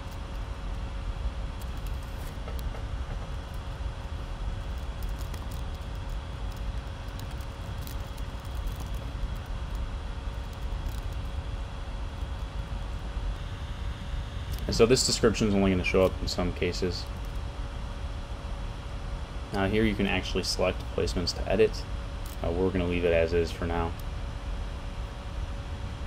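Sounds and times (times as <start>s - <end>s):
low room hum: 0.0s - 26.0s.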